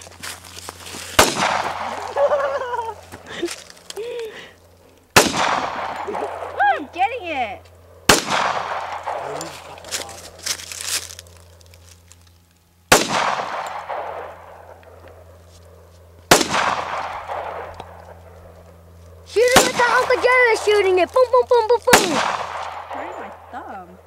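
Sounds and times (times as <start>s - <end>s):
pistol shots with echo: 1.2s - 2.1s, 5.1s - 6.6s, 8.1s - 9.6s, 12.9s - 14.8s, 16.3s - 18.2s, 19.4s - 20.7s, 21.9s - 23.5s.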